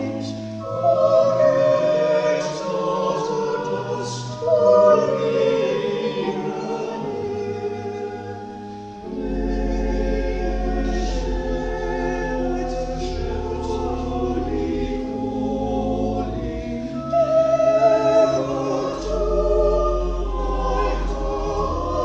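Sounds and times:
choir singing a carol: 0.0 - 22.0
organ: 0.0 - 22.0.

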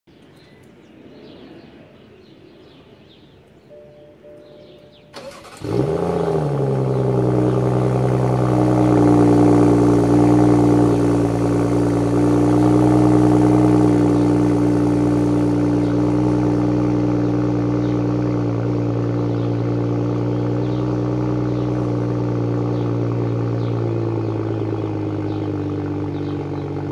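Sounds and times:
car engine fast cold idle: 5.1 - 26.9.

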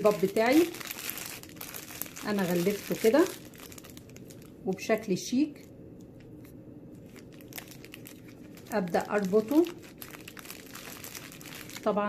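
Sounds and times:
plastic bag crinkling: 0.0 - 4.9, 6.0 - 12.0.

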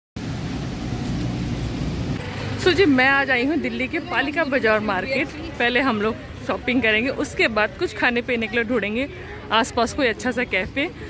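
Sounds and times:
city road traffic rumble: 0.2 - 11.0.

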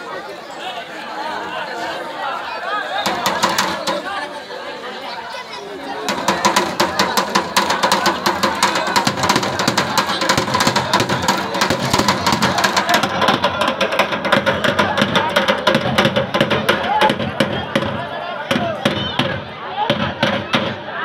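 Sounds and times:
crowd chatter: 0.0 - 21.0
rapid sharp drumbeats: 3.0 - 4.2, 6.0 - 21.0.

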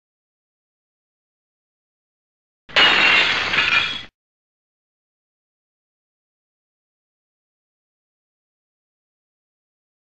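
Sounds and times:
glass shattering: 2.7 - 4.1.

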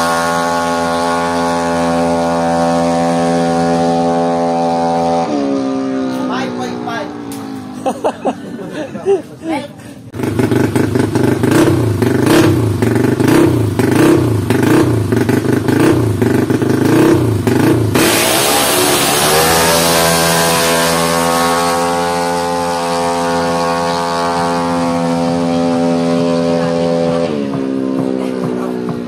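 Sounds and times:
scooter engine revving: 0.0 - 8.6, 10.0 - 29.0.

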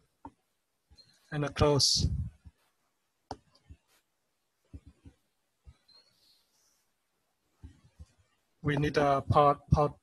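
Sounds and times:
computer mouse clicks: 4.7 - 6.0.

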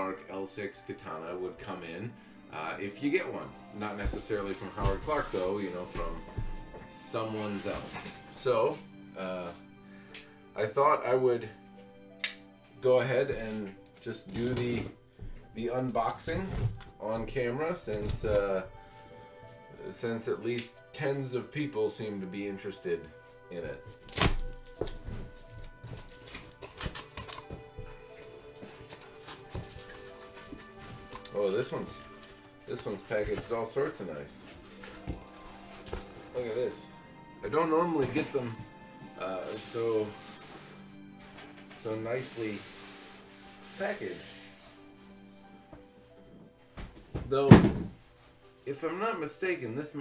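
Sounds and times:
background music: 0.0 - 50.0
thump on cardboard box: 47.2 - 48.0.

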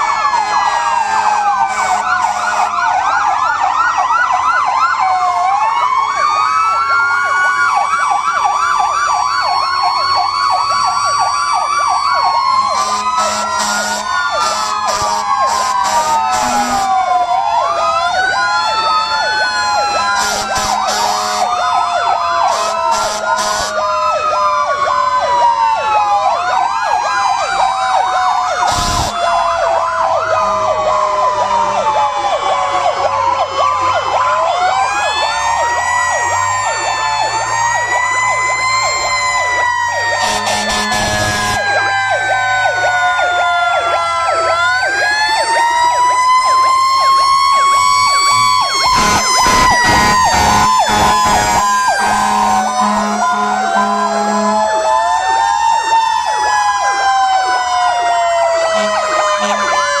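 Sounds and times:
fire truck sirens wailing: 0.0 - 60.0
loud horn blasts: 1.6 - 2.8, 12.6 - 17.0, 20.0 - 21.6, 22.5 - 23.9, 28.6 - 29.3, 40.2 - 41.7, 48.3 - 54.8, 58.7 - 59.7.

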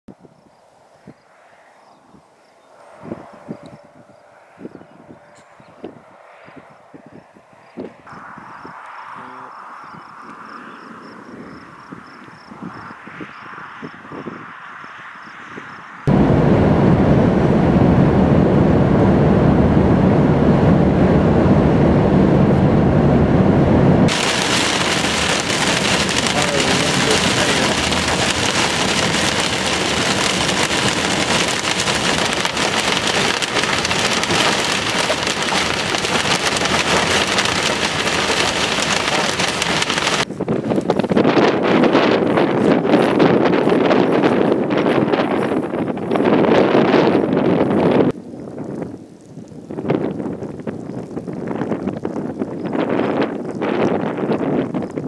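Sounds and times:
wind gusting on microphone: 0.1 - 55.0
heavy rain on car roof: 24.1 - 40.3.

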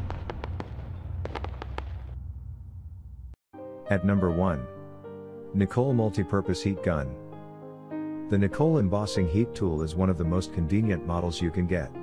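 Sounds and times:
sharp crackles: 0.0 - 2.2
deep rumble: 0.0 - 3.4.

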